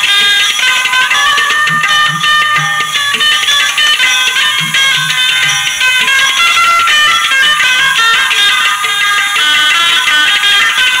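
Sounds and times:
thin treble-heavy music: 0:00.0 - 0:11.0.

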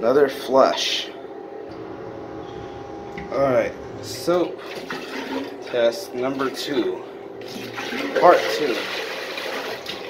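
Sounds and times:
toilet flushing water rush: 0:01.8 - 0:10.0.

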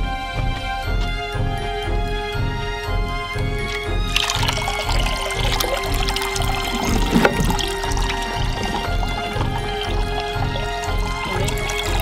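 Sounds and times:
music with steady beat: 0:00.0 - 0:04.2
hose water splashing into sink: 0:03.7 - 0:12.0.

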